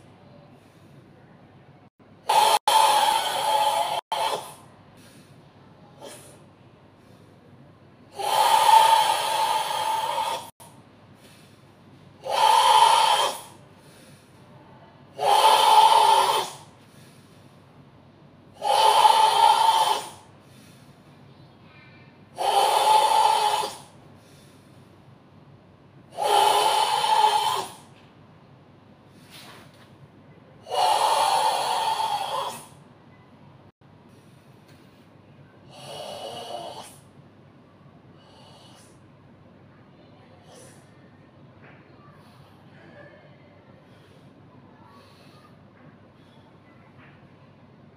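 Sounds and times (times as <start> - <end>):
loud forceful breaths: 2.0 - 17.8, 18.5 - 25.2, 26.0 - 28.0, 30.6 - 32.8, 38.2 - 39.1, 42.0 - 47.2.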